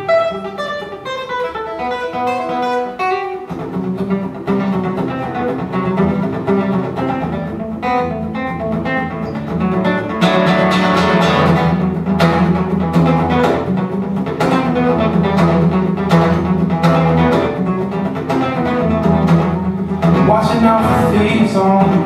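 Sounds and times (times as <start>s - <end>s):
fingerstyle acoustic guitar: 0.0s - 22.0s.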